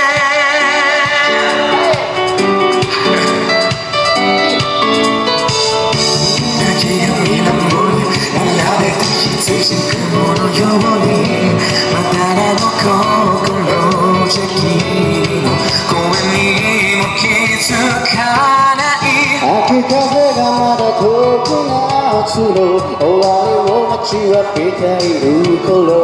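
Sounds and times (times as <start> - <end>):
man singing into microphone: 0.0 - 3.6, 5.9 - 26.0
backing music with keyboard: 0.0 - 26.0.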